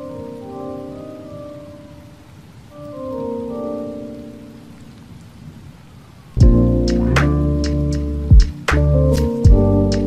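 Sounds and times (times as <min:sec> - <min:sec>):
steady rain: 0:00.0 - 0:10.0
mellow lofi tune: 0:06.4 - 0:10.0.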